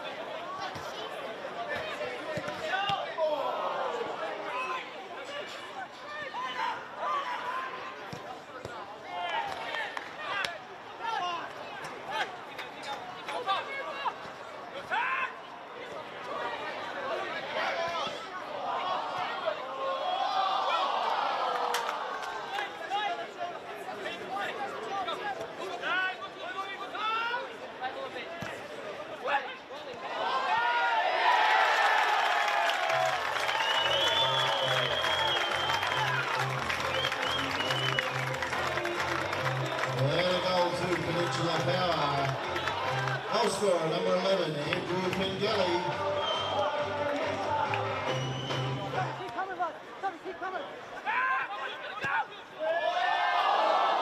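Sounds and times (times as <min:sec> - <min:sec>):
players shouting: 0:00.1 - 0:05.4, 0:29.3 - 0:50.4, 0:51.0 - 0:54.0
crowd cheering: 0:16.3 - 0:23.2, 0:30.0 - 0:49.8, 0:51.0 - 0:54.0.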